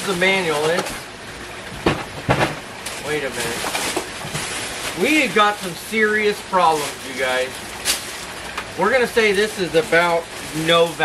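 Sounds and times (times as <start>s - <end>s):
paper and cardboard handling: 8.9s - 11.0s
sharp paper crinkles: 9.8s - 11.0s.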